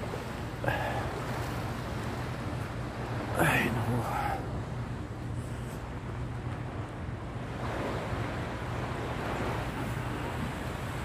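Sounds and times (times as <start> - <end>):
sea water lapping: 0.0 - 11.0.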